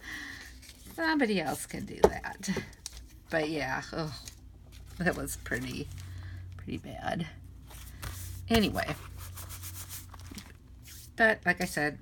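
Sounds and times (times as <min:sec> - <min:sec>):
hands rubbing paper: 0:08.0 - 0:11.2.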